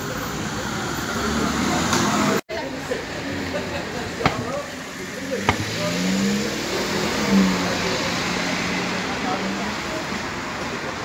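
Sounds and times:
car engine humming: 0.0s - 10.3s.

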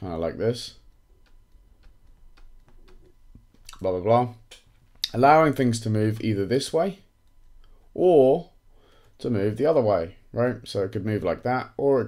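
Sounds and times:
stylus clicks: 0.8s - 3.9s, 7.2s - 7.8s.

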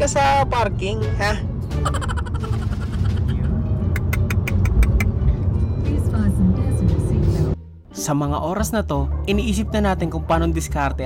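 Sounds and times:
road and engine rumble in car: 0.0s - 7.6s
music in car: 0.0s - 8.1s.

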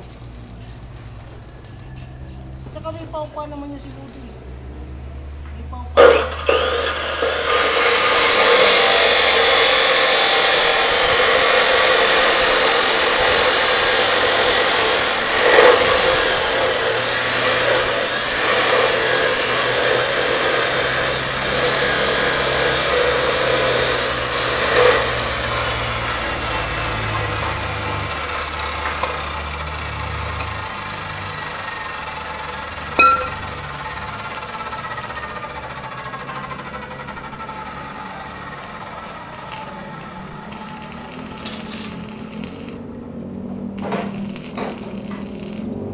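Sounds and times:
power tool running: 5.9s - 45.9s.

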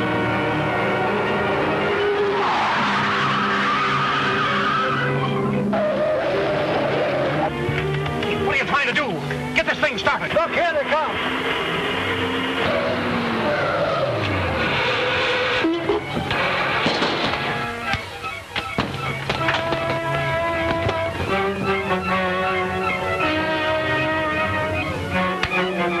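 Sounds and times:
car engine: 0.0s - 8.0s
orchestral film score: 0.0s - 26.0s.

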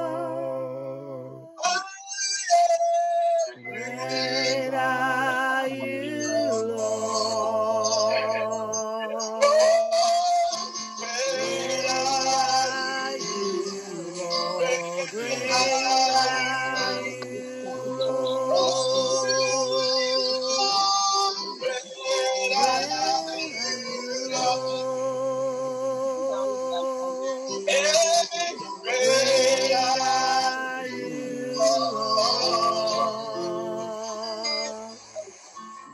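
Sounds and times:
man and woman singing: 0.0s - 1.6s, 3.6s - 35.2s.

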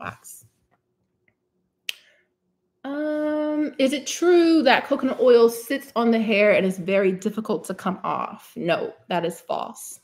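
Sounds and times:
woman speaking: 2.8s - 10.0s.

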